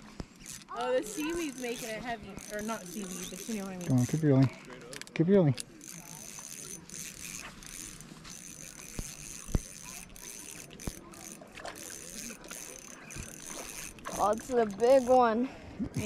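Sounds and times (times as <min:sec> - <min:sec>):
fishing reel cranking: 0:00.3 - 0:16.0.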